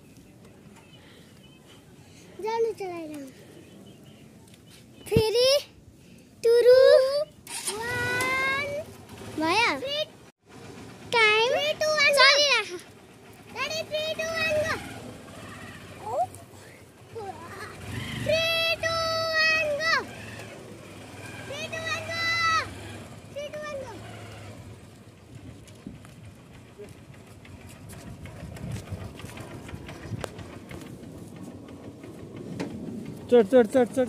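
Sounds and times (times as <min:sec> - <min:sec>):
motorcycle engine idling: 0:07.5 - 0:34.0.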